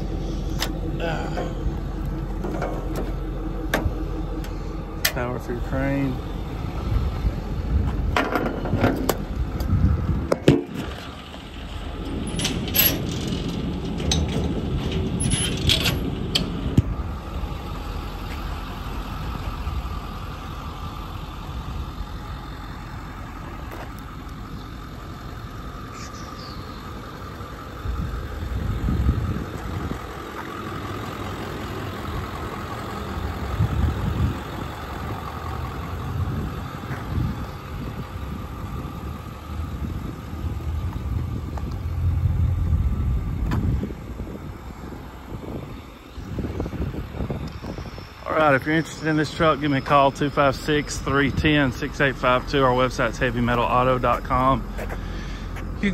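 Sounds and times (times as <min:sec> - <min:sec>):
truck engine idling: 0:00.0 - 0:55.9
knocks and clatter: 0:08.0 - 0:16.9.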